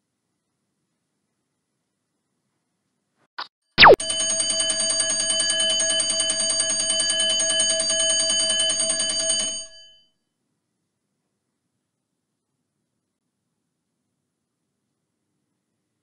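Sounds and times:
falling electronic swoop: 0:03.8 - 0:04.0
timer blip: 0:03.8 - 0:04.4
alarm bell ringing: 0:03.8 - 0:10.1.

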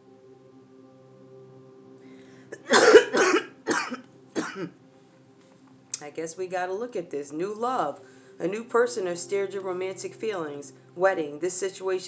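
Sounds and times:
person coughing: 0:02.6 - 0:04.7.

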